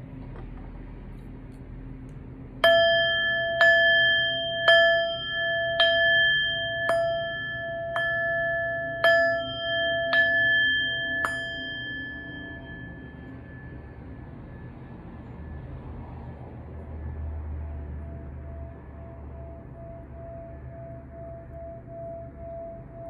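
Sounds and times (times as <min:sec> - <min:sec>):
singing bowl struck with mallet: 0:02.6 - 0:14.7.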